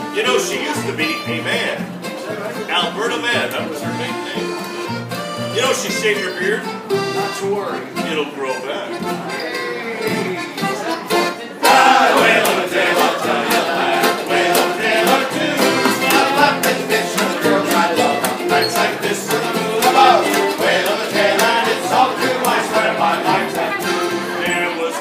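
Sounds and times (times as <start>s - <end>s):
accordion: 0.0s - 25.0s
strummed acoustic guitar: 0.0s - 25.0s
upright bass: 0.0s - 25.0s
voices singing along: 11.6s - 25.0s.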